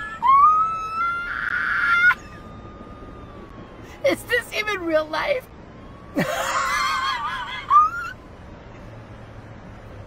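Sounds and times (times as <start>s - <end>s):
man's squealing laugh: 6.2s - 8.2s.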